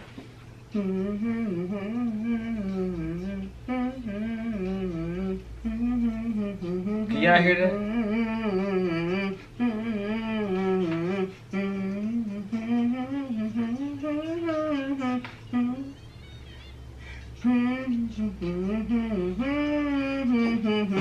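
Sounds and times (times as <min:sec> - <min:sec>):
person humming a melody: 0:00.7 - 0:21.0.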